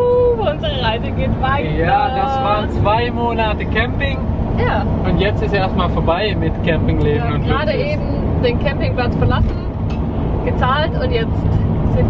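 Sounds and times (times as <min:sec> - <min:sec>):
people talking: 0:00.0 - 0:09.7, 0:10.5 - 0:12.0
engine and road rumble: 0:00.0 - 0:12.0.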